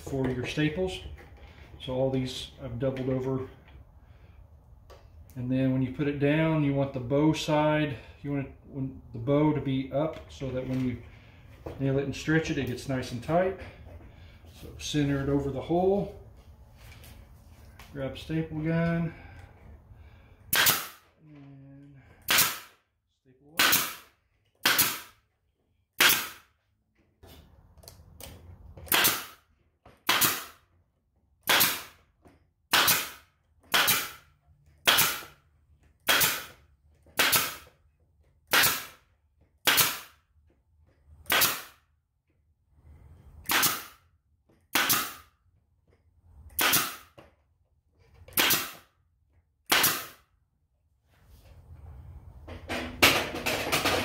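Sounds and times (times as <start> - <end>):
pneumatic staple gun firing: 20.5 - 21.1, 22.3 - 22.8, 23.6 - 25.2, 26.0 - 26.4, 28.9 - 29.4, 30.0 - 30.6, 31.4 - 32.0, 32.7 - 34.2, 34.8 - 35.4, 36.0 - 36.6, 37.2 - 37.7, 38.5 - 39.0, 39.6 - 40.2, 41.2 - 41.8, 43.4 - 44.0, 44.7 - 45.3, 46.5 - 47.2, 48.3 - 48.9, 49.6 - 50.2.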